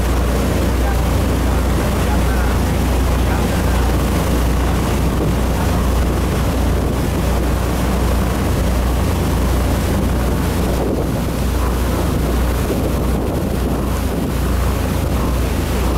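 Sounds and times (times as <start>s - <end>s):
churning wake rushing: 0.0s - 15.9s
motorboat engine drone: 0.0s - 15.9s
wind buffeting microphone: 0.0s - 15.9s.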